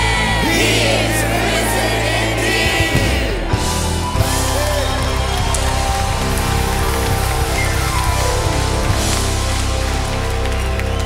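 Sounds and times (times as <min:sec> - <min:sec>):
congregation applauding: 0:00.0 - 0:11.0
worship band sustained chords: 0:00.0 - 0:11.0.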